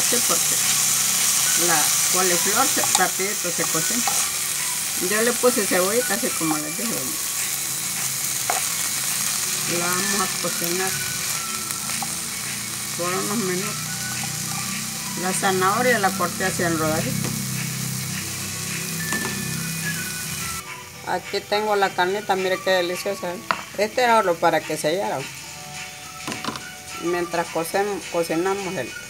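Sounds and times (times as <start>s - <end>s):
faint background music: 0.0s - 29.0s
vegetables sizzling in a pan: 0.0s - 29.0s.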